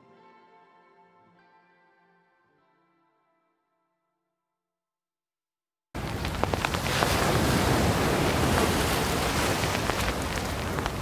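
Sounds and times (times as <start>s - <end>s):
crackles and pops: 6.0s - 11.0s
steady rushing noise: 6.0s - 11.0s.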